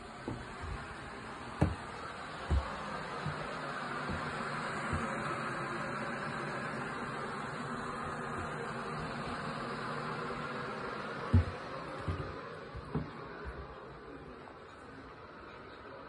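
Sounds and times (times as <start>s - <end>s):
electric kettle heating water: 0.0s - 14.4s
dull thumps: 1.6s - 5.2s, 11.3s - 13.6s.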